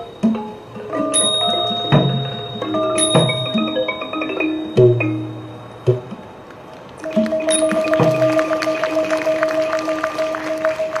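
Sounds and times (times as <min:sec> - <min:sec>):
light percussion strikes: 0:00.0 - 0:11.0.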